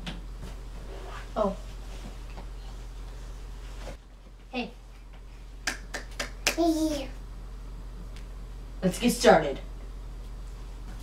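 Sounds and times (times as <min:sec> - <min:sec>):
hand claps: 0:05.6 - 0:06.8.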